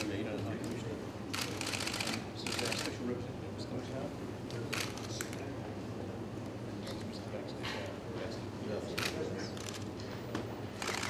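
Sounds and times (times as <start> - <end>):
low background chatter: 0.0 - 11.0
camera shutters clicking: 0.6 - 2.9, 9.0 - 9.9, 10.8 - 11.0.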